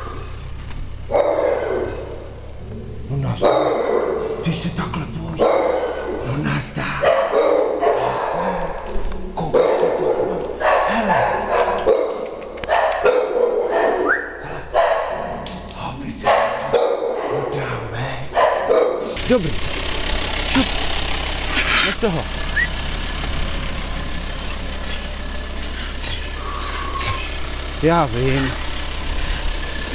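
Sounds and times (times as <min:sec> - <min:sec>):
dog barking: 0:01.1 - 0:02.3, 0:03.4 - 0:04.4, 0:05.4 - 0:06.3, 0:07.0 - 0:08.8, 0:09.4 - 0:15.6, 0:16.2 - 0:17.7, 0:18.3 - 0:19.2.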